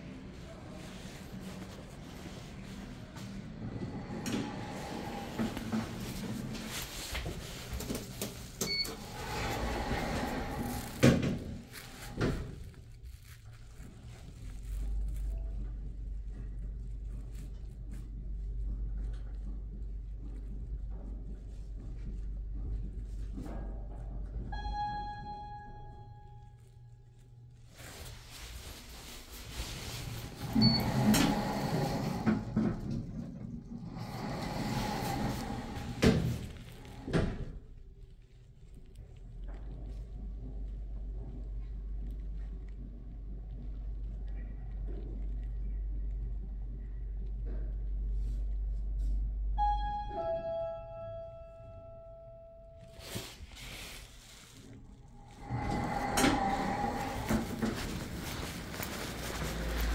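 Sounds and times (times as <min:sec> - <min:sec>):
elevator humming: 0:00.0 - 0:12.3, 0:27.8 - 0:37.5, 0:54.9 - 0:59.9.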